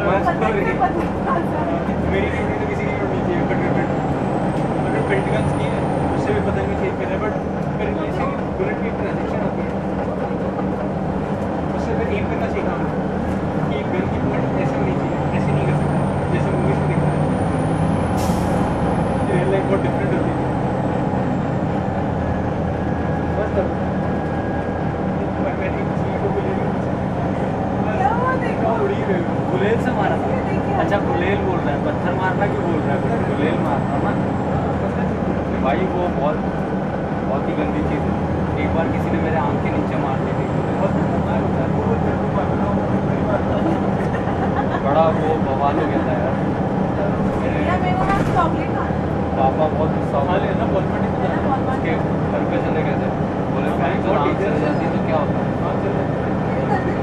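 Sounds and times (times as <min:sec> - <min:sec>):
bus engine running: 0:00.0 - 0:57.0.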